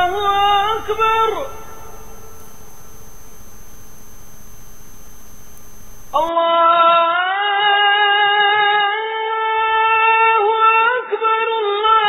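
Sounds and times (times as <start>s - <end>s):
steady background hum: 0.0s - 6.3s
call to prayer singing: 0.0s - 12.0s.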